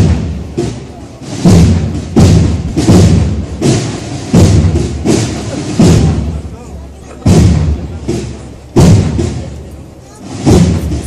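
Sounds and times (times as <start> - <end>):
crowd murmur: 0.0 - 11.0
slow heavy drum beats: 0.0 - 11.0.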